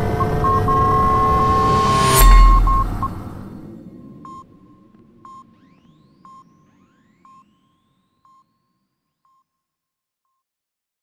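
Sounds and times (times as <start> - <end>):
faint rising whistling sweeps: 0.0 - 3.7
low blast rumble: 0.0 - 4.0
electronic sonar ping: 0.1 - 3.5.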